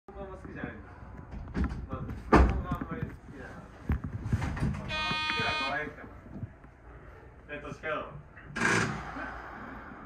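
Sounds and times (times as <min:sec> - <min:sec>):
train cab buzzer steady tone: 0:04.9 - 0:05.9.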